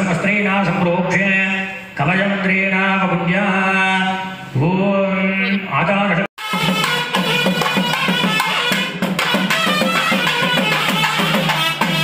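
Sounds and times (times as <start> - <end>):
man chanting on one pitch: 0.0 - 6.4.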